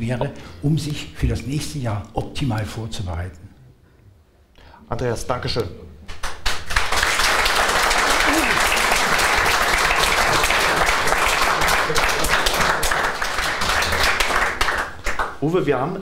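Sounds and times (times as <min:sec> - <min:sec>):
audience applauding: 0:06.1 - 0:15.4.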